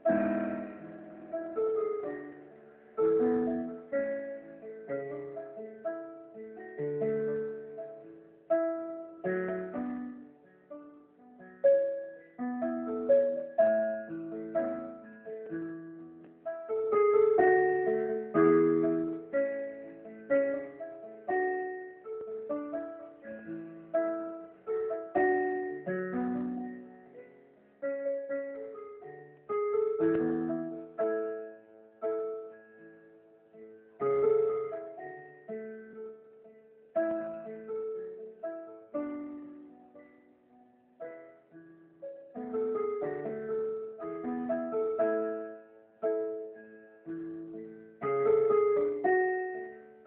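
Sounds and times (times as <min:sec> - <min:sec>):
electronic keyboard chords and melody: 0:00.0 - 0:50.0.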